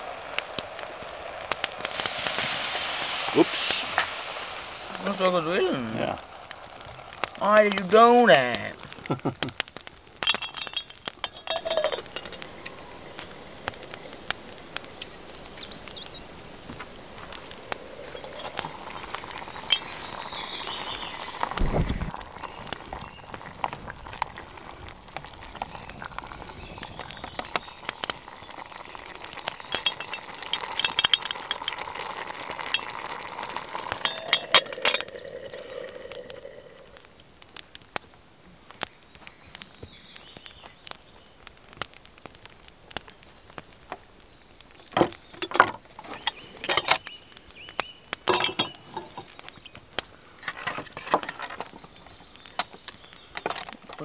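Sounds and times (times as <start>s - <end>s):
crackling wood fire: 0.0s - 54.0s
stew simmering and sizzling in pot: 0.0s - 54.0s
iron lid clinking against pot: 10.2s - 12.4s, 34.0s - 35.2s.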